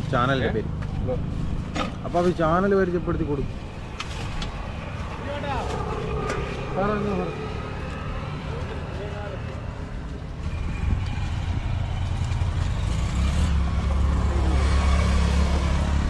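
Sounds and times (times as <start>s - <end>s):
vehicle engine hum: 0.0s - 16.0s.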